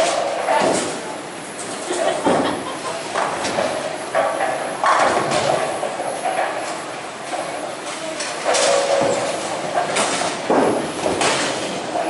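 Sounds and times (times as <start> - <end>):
bowling balls rolling on lanes: 0.0 - 12.0.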